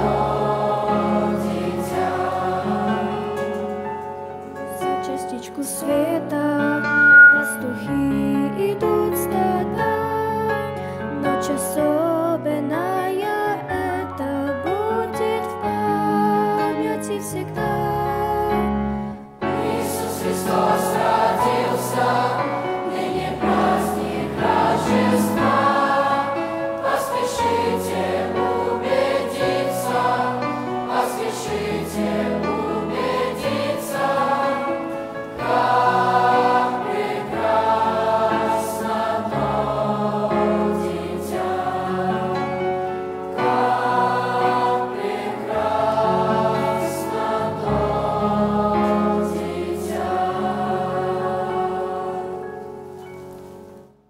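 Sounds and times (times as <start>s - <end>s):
mixed choir singing a hymn: 0.0s - 10.2s, 19.4s - 52.9s.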